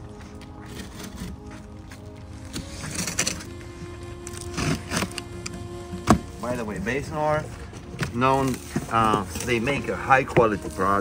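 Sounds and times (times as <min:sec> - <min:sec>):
background music with held notes: 0:00.0 - 0:11.0
utility knife slicing packing tape: 0:04.3 - 0:06.2.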